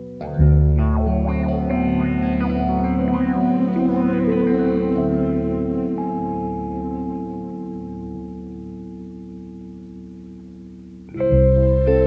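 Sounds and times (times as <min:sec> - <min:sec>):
rock band playing: 0:00.0 - 0:08.5
bass guitar: 0:00.0 - 0:12.0
electric guitar with effects: 0:00.0 - 0:12.0.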